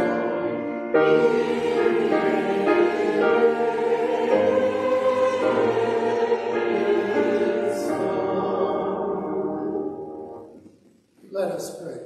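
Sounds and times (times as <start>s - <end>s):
church choir singing: 0.0s - 10.8s.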